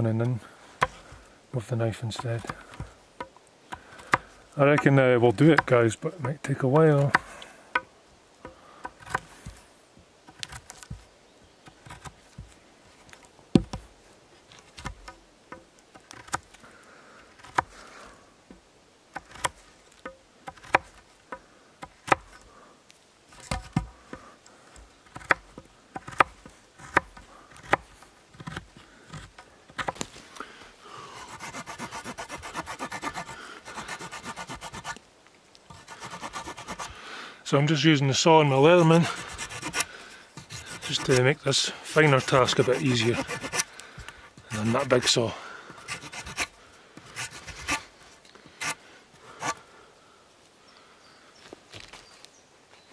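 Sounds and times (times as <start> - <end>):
folding saw rasping: 31.2 - 35.0, 35.7 - 37.0, 38.6 - 43.8, 44.5 - 47.9
knife cutting into wood: 31.2 - 35.0, 38.8 - 43.7, 45.8 - 47.9.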